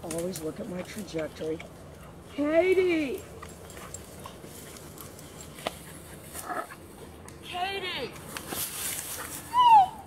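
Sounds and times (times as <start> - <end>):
rustling in dry brush: 1.9 - 7.2, 8.1 - 9.7.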